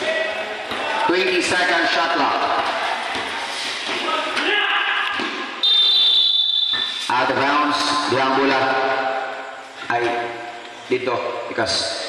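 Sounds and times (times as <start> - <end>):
voices in a hall: 0.0 - 12.0
referee's whistle blast: 5.6 - 7.1.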